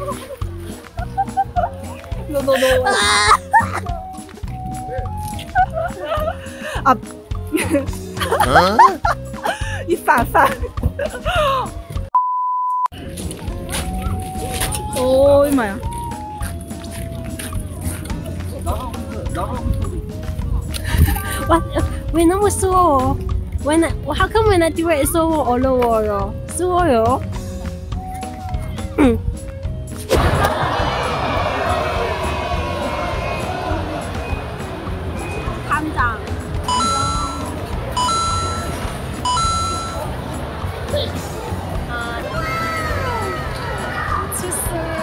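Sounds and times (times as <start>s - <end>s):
electronic two-note beep: 36.7s - 40.1s.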